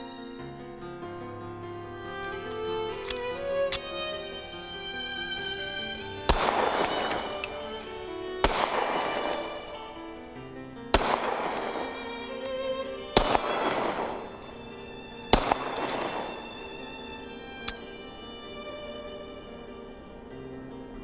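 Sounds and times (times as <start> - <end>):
pistol shots with ringing echo: 6.3 - 7.6, 8.4 - 9.7, 10.9 - 12.2, 13.2 - 14.6, 15.3 - 17.8.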